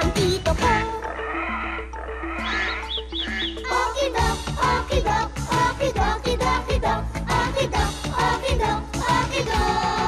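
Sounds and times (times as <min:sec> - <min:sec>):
children's tv theme music: 0:00.0 - 0:10.0.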